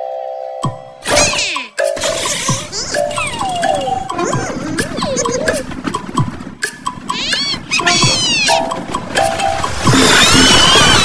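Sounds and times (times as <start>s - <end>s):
cartoon background music: 0.0s - 11.0s
squeaky character vocal sounds: 1.1s - 5.7s, 7.1s - 8.7s.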